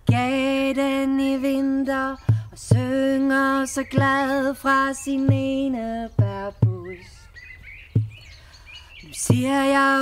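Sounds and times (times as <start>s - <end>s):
songbird chirping: 0.1s - 10.0s.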